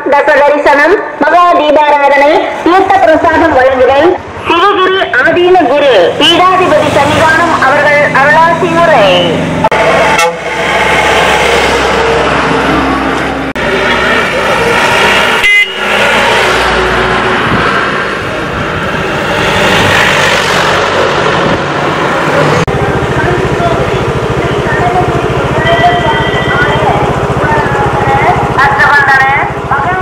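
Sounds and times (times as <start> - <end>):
vehicles driving past: 2.2 - 30.0
horns honking: 6.3 - 10.6, 15.2 - 16.0, 24.4 - 30.0.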